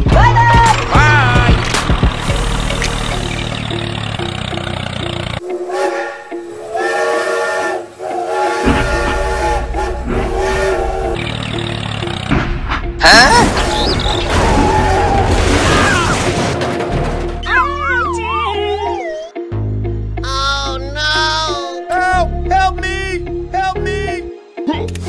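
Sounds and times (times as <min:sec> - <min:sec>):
background music: 0:00.0 - 0:25.0
toy train whistle: 0:05.4 - 0:11.3.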